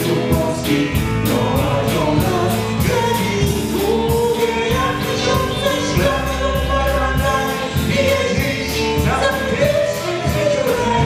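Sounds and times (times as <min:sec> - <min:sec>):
drum kit cymbal beat: 0:00.0 - 0:11.0
electric guitar: 0:00.0 - 0:11.0
keyboard: 0:00.0 - 0:11.0
person singing into microphone: 0:00.0 - 0:11.0.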